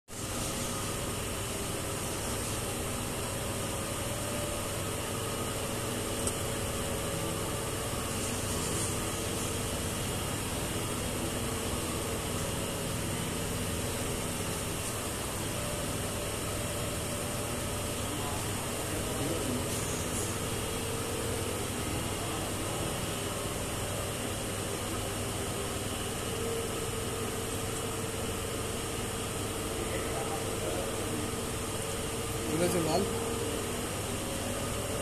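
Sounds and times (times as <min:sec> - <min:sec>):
furnace whirring hum: 0:00.1 - 0:35.0.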